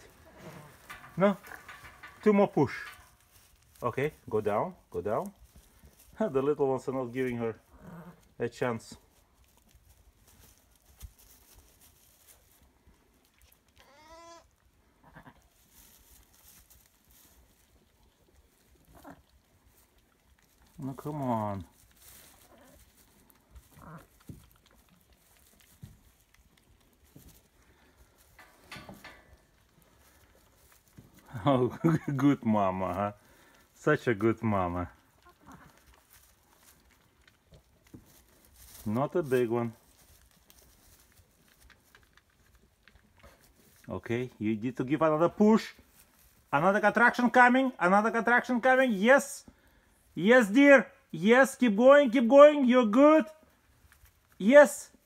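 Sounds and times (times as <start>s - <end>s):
rustling in straw: 0.0s - 47.7s
sheep bleating: 13.8s - 14.4s.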